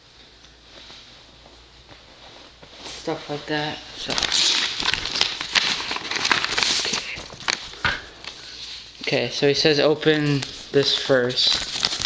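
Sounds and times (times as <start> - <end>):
padded mailer tearing: 4.0 - 7.7, 10.4 - 12.0.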